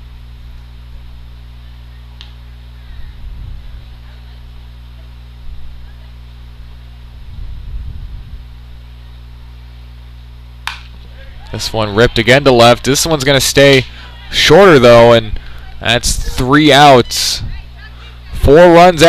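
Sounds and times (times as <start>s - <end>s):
faint low rumbles: 0.0s - 18.7s
steady low hum: 0.0s - 19.0s
bat cracking ball: 10.6s - 11.1s.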